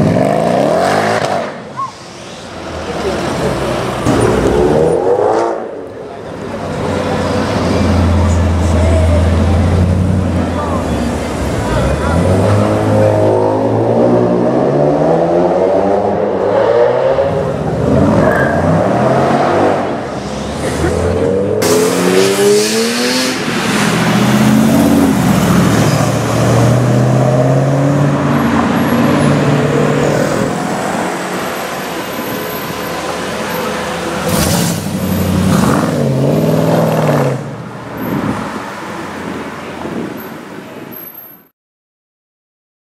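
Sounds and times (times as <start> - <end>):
car engine revving and accelerating: 0.0 - 1.6, 11.4 - 31.2, 34.2 - 38.4.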